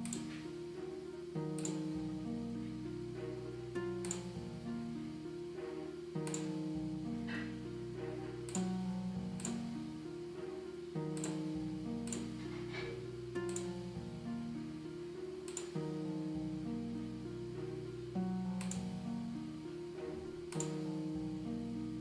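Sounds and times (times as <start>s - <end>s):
sharp high clicks: 0.0s - 2.1s, 3.1s - 4.6s, 5.6s - 9.8s, 10.4s - 14.1s, 15.4s - 16.1s, 18.5s - 19.0s, 20.0s - 21.0s
orchestral string melody with echo: 0.0s - 22.0s
bass line: 1.3s - 14.9s.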